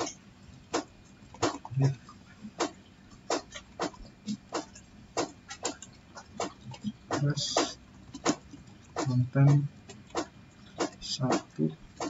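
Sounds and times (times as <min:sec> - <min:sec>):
keyboard key clacks: 0:02.6 - 0:12.0.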